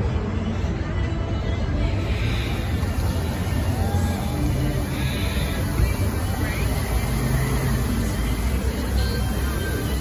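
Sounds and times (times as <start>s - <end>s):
music over loudspeakers: 0.0s - 10.0s
fountain water jets rushing: 1.8s - 10.0s.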